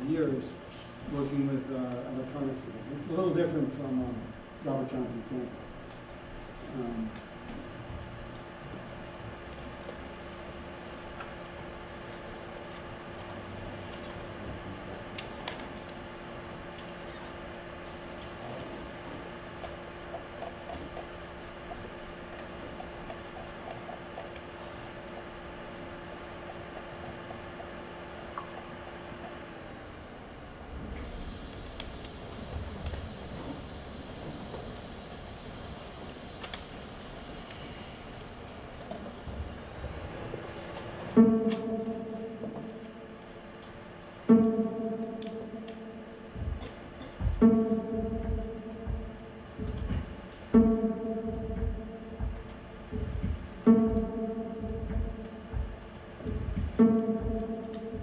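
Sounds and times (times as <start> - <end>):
low steady rumble: 0.0 - 58.0
steady hum and hiss: 0.0 - 58.0
soft thumps: 46.3 - 58.0.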